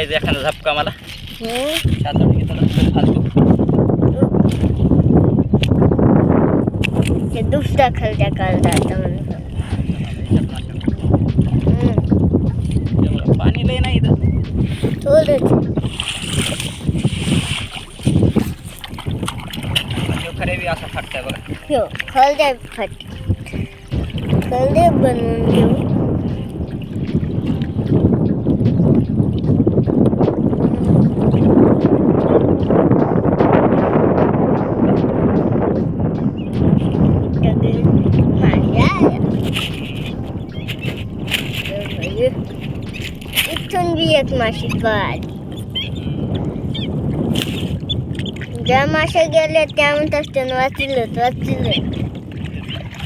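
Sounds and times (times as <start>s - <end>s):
water splashing and dripping: 0.0s - 53.0s
wind buffeting microphone: 0.0s - 53.0s
splashes and drips: 14.6s - 31.5s, 47.1s - 53.0s
person speaking: 24.5s - 25.8s, 41.6s - 42.5s, 43.4s - 45.2s.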